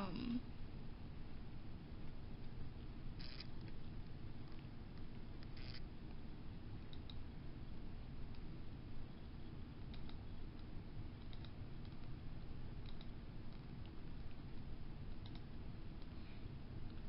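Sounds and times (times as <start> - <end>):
low room rumble: 0.0 - 17.0
faint clicks: 6.9 - 7.2, 9.8 - 12.2, 12.8 - 16.2.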